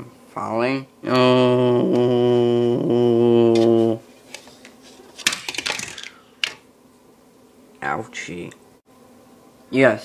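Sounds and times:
toy falling and clattering: 0:05.1 - 0:06.6.

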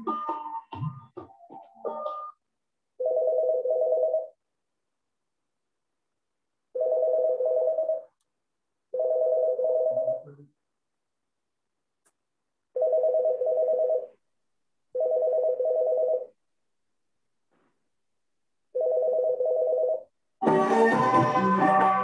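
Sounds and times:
telephone ringtone warble: 0:03.0 - 0:04.4, 0:06.8 - 0:08.1, 0:09.0 - 0:10.2, 0:12.8 - 0:14.1, 0:15.0 - 0:16.3, 0:18.8 - 0:20.1.

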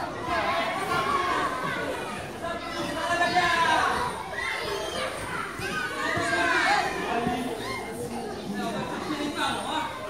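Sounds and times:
adults chattering: 0:00.0 - 0:10.0
young children's high voices: 0:00.0 - 0:10.0.

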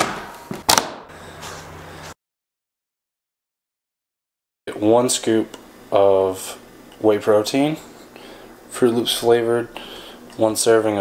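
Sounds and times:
steady low hum: 0:04.7 - 0:11.0.

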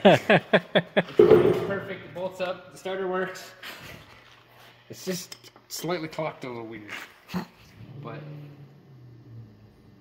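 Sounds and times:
short sharp knock: 0:01.2 - 0:01.8.

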